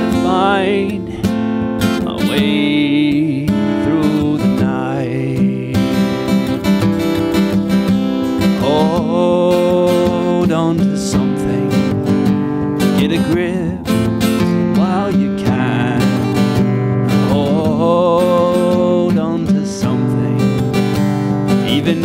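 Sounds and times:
acoustic guitar strumming: 0.0 - 22.0.

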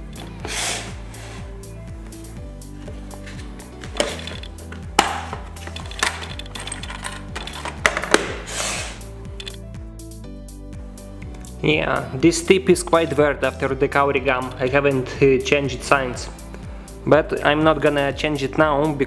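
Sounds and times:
background music: 0.0 - 19.0
plastic case clicks and rattles: 4.0 - 8.4.

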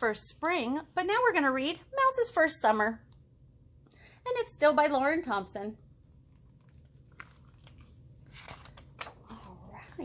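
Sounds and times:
book cover rustling and ticking: 6.2 - 10.0.

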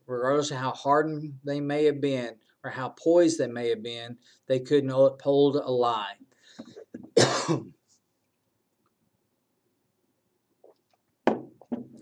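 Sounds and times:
man clearing his throat: 6.8 - 7.8.

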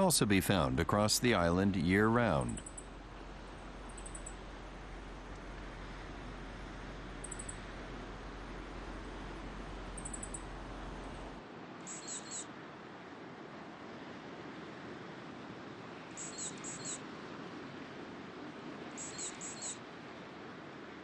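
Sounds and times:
steady outdoor hiss: 0.0 - 21.0
songbird calls: 3.8 - 4.4, 7.2 - 7.7, 9.9 - 11.2, 11.8 - 12.5, 16.1 - 17.0, 18.9 - 19.8.

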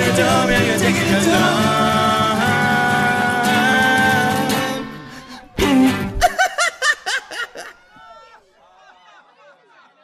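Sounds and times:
person laughing: 5.3 - 7.8.

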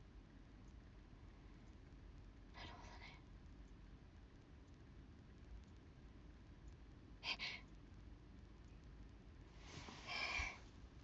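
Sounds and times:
low room hum: 0.0 - 11.0
young woman whispering: 2.5 - 3.3, 7.2 - 7.7, 10.0 - 10.6.

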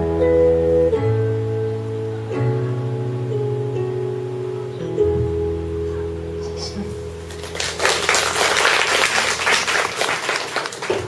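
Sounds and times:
held keyboard chord: 0.0 - 8.4
audience applauding: 7.2 - 11.0.

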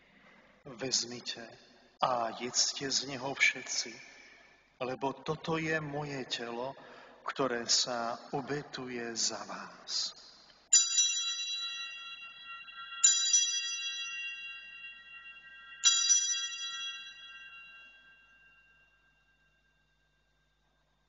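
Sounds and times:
altar bell ringing: 10.2 - 20.7.

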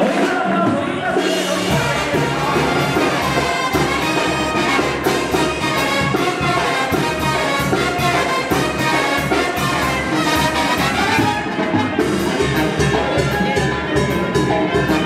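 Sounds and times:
brass band playing: 0.0 - 15.0.

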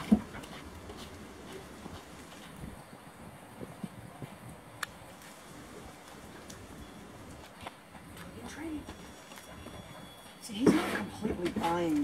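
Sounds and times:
running steps on concrete: 0.0 - 12.0.

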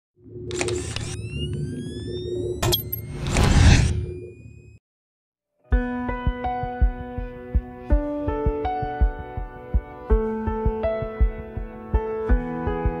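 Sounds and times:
music: 5.5 - 13.0.

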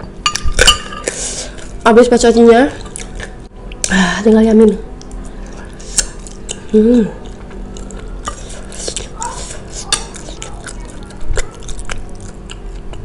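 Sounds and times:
chewing noodles: 5.0 - 13.0
fork clicking on plate: 9.8 - 12.6.

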